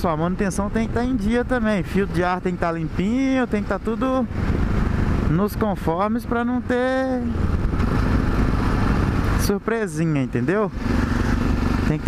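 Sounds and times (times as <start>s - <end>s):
motorcycle engine running: 0.0s - 12.0s
wind noise on microphone: 7.3s - 9.4s.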